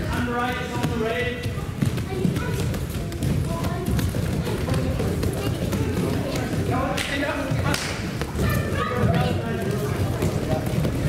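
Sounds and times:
children running barefoot on mats: 0:00.0 - 0:11.0.

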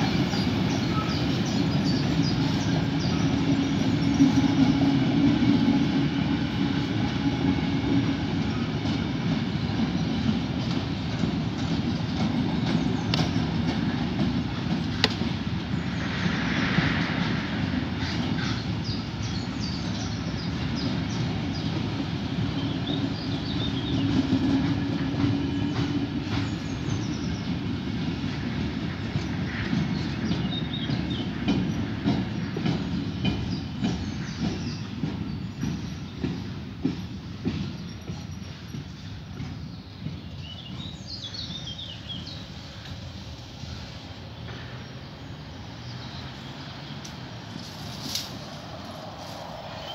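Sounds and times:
train wheels rumbling on rail: 0:00.0 - 0:49.9.

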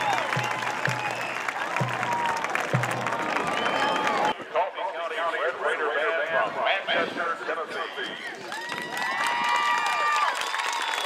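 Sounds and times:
long whoops: 0:00.0 - 0:02.6, 0:03.2 - 0:04.4
crowd cheering and clapping: 0:00.0 - 0:04.4, 0:08.2 - 0:11.0.

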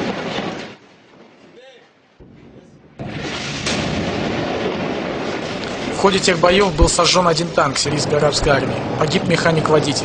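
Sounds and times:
sharp crack: 0:00.0 - 0:10.0
weapons fire: 0:02.2 - 0:07.7.

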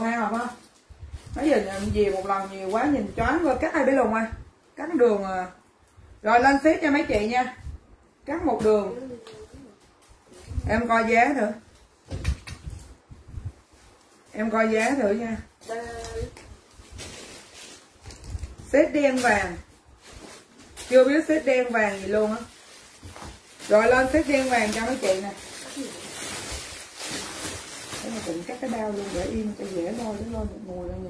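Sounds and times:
plastic wrapping rustling: 0:00.0 - 0:31.0.

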